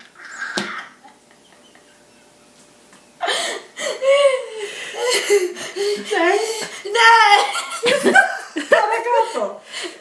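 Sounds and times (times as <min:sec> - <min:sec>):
woman and girl laughing: 0:03.2 - 0:06.4, 0:07.3 - 0:09.5.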